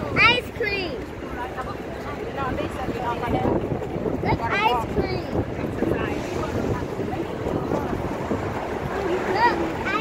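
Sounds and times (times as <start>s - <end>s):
street noise rumble: 0.0s - 10.0s
wind buffeting microphone: 0.0s - 10.0s.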